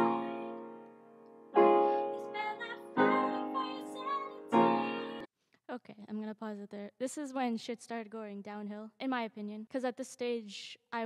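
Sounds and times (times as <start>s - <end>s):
young woman singing softly: 0.0s - 0.8s, 1.6s - 5.3s
piano chords: 0.0s - 5.3s.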